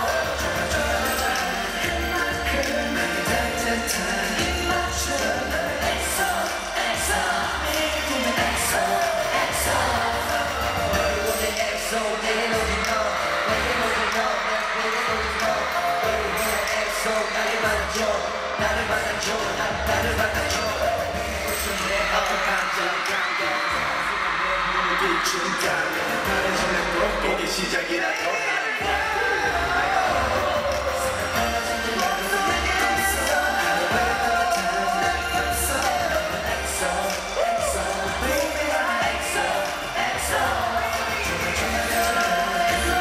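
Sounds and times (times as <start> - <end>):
people singing into microphones: 0.0 - 43.0
pop song over arena sound system: 0.0 - 43.0.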